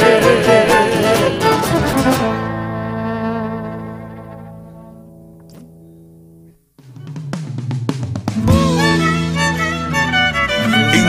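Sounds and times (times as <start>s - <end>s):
violin: 0.0s - 5.1s, 8.4s - 11.0s
acoustic guitars: 0.0s - 7.1s, 8.3s - 11.0s
electric bass: 1.6s - 6.4s, 7.0s - 11.0s
bombo drum: 6.8s - 9.1s.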